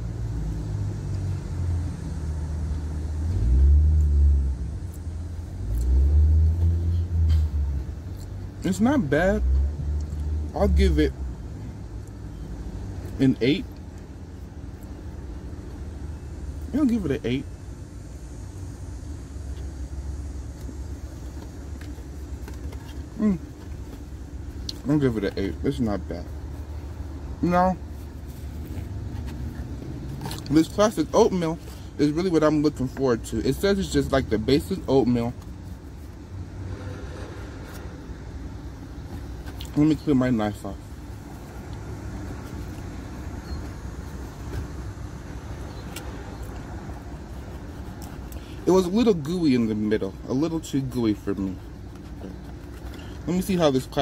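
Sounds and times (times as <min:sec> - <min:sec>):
car engine running hum: 0:00.0 - 0:54.0.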